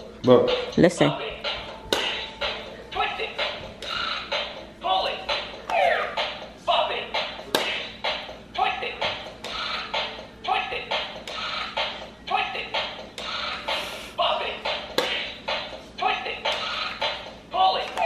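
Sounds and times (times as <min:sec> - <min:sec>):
steady electronic beat: 0:00.2 - 0:17.7.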